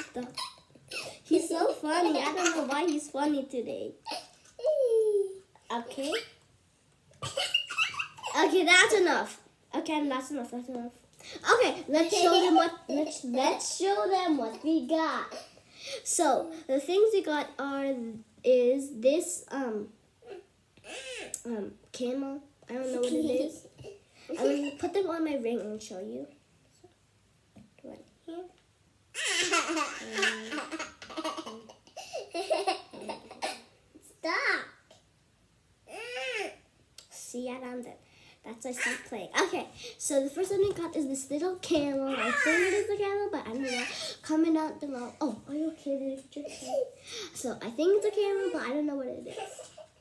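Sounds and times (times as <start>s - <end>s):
young boy laughing: 0.0s - 3.0s, 7.2s - 8.5s, 11.9s - 13.1s, 29.2s - 33.7s, 49.3s - 50.0s
child making silly vocal noises: 4.2s - 6.3s, 42.0s - 42.9s.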